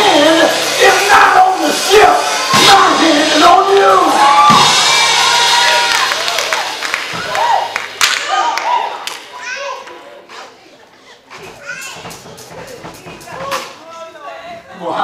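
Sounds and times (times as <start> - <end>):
congregation shouting: 0.0 - 9.1
music: 0.0 - 9.2, 11.3 - 14.0
people clapping: 5.2 - 10.0.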